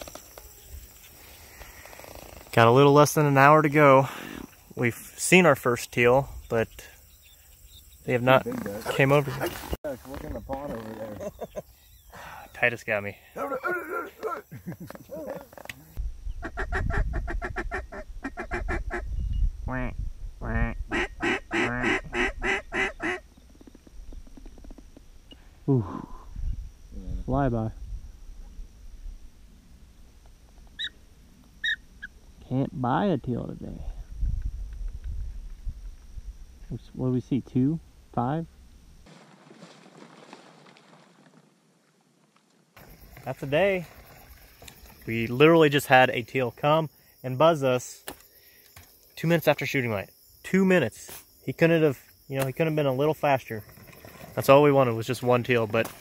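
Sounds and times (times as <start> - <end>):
light hiss: 0.0 - 13.0
low wind rumble on microphone: 16.0 - 21.2, 26.2 - 30.1, 33.8 - 36.8
soft water splashing: 39.1 - 42.0, 43.3 - 45.1.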